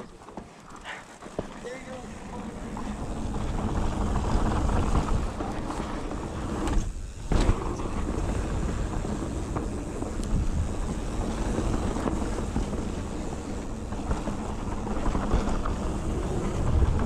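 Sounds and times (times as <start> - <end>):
bike tyres rumbling over dirt: 0.0 - 17.0
wind on microphone: 2.8 - 17.0.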